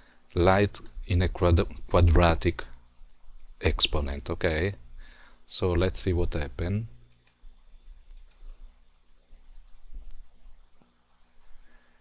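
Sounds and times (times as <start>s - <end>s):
low steady hum: 0.0s - 12.0s
computer mouse clicks: 7.1s - 7.4s, 8.0s - 8.6s.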